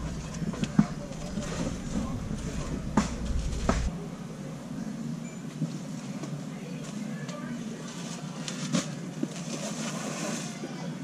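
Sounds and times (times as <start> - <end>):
busy store background noise: 0.0 - 11.0.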